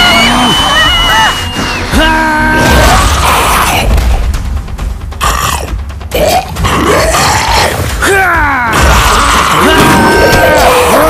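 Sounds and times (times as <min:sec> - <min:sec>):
background music with heavy bass: 0:00.0 - 0:11.0
person grunting and growling: 0:05.2 - 0:11.0.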